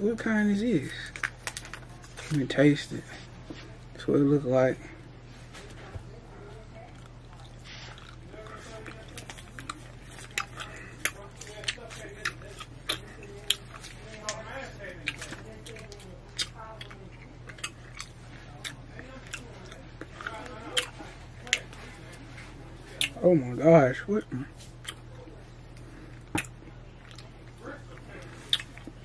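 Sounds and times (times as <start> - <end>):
low steady hum: 0.0 - 29.0
person chewing gum: 6.8 - 23.2, 24.6 - 29.0
wet mouth clicks and smacks: 28.5 - 28.9.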